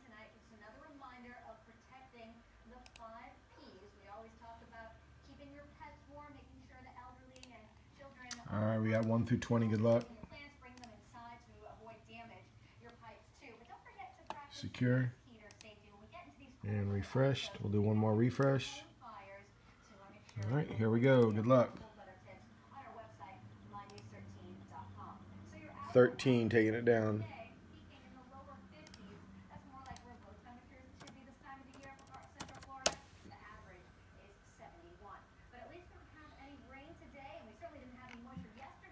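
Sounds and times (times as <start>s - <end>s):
woman's voice: 0.0s - 38.9s
computer mouse clicks: 2.8s - 3.1s, 7.3s - 7.6s, 8.2s - 11.0s, 15.4s - 15.8s, 23.8s - 24.2s, 28.8s - 29.2s, 29.8s - 30.3s, 31.0s - 33.1s.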